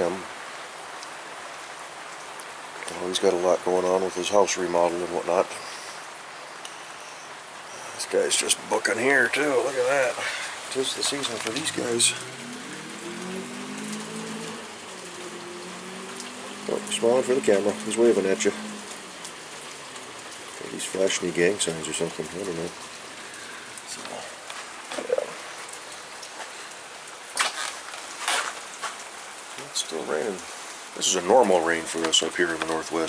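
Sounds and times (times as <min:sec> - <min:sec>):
steady rain falling: 0:00.0 - 0:33.0.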